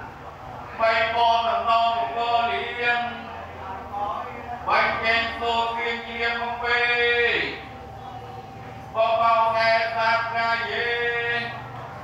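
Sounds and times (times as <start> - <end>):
person chanting: 8.9 - 12.0.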